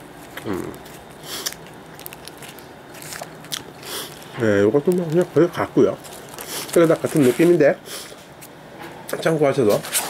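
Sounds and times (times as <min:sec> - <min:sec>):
person chewing food: 0:00.2 - 0:05.4.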